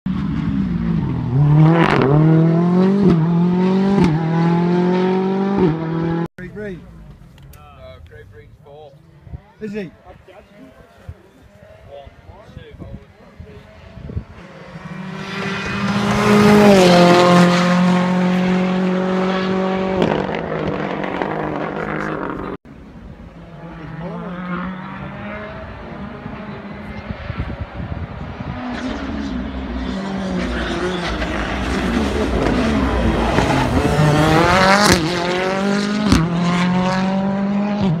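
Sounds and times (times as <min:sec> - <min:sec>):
rally car engine at full throttle: 0:00.1 - 0:06.3, 0:11.6 - 0:38.0.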